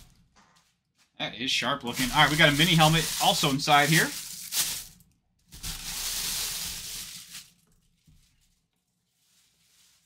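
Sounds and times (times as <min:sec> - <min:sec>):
packaging rustling and scraping: 0:01.9 - 0:08.6
sharp crinkle of packaging: 0:01.9 - 0:08.6.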